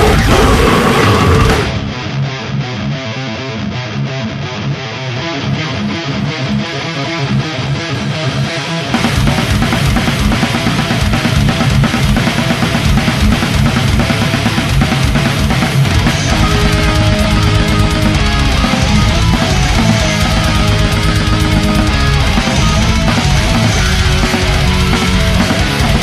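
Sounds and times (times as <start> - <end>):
death metal guitars and drums: 0.0 - 26.0
thin rapid guitar riff: 15.8 - 26.0.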